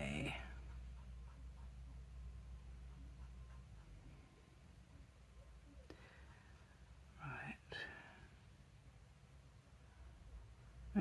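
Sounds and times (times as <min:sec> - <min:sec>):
soft murmured voice: 0:05.3 - 0:08.4.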